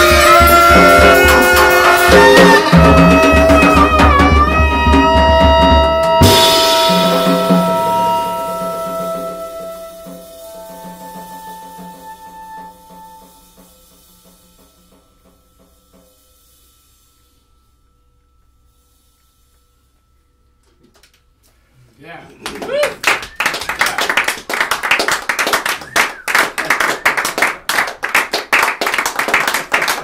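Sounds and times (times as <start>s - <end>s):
jazz quartet playing: 0.0s - 13.9s
cymbals ringing: 0.0s - 20.7s.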